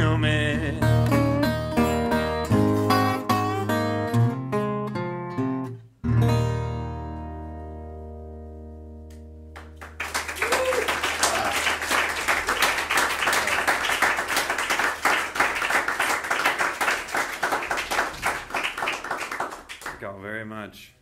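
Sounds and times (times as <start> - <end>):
audience clapping: 9.5 - 20.2.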